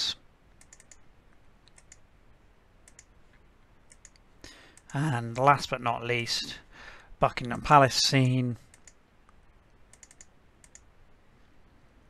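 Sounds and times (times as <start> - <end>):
computer mouse clicking: 0.6 - 2.1, 2.8 - 5.0, 8.6 - 10.9.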